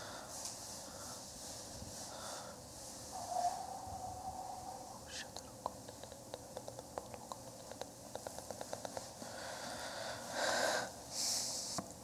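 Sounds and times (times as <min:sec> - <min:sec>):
person whispering: 0:03.2 - 0:09.1.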